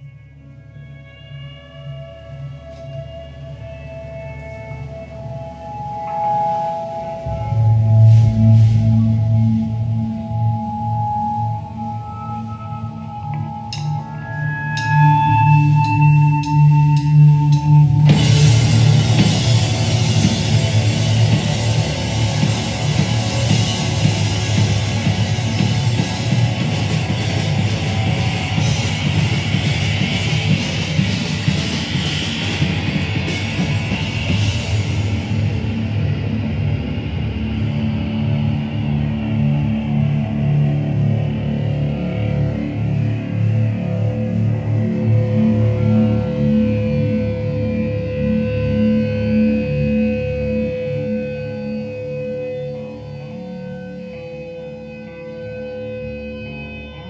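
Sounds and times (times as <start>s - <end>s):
electric guitar with reverb: 0.0s - 57.0s
drum kit: 5.8s - 12.1s, 13.0s - 39.3s.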